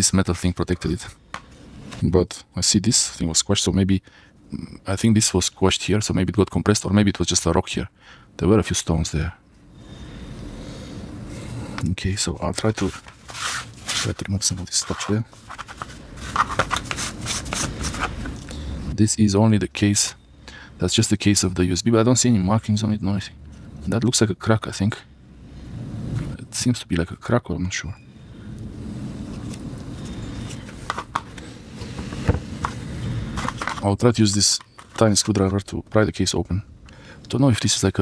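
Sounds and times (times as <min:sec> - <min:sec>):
low background rumble: 0:00.0 - 0:38.0
scratchy rubbing noise: 0:12.7 - 0:18.3.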